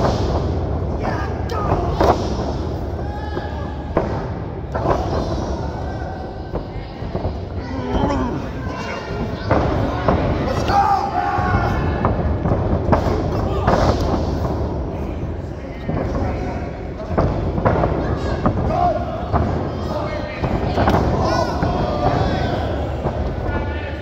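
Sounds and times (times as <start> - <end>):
indistinct shouting voices: 0.9 - 12.4, 18.0 - 24.0.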